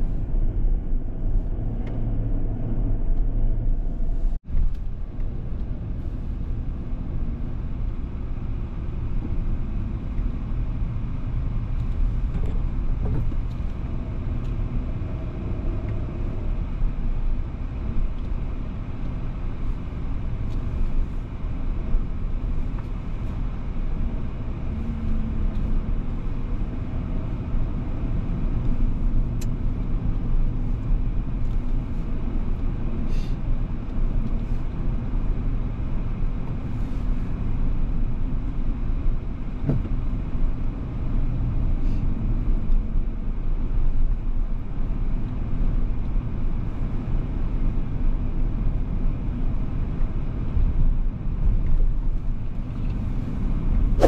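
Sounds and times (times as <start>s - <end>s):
car cabin road noise: 0.0s - 54.0s.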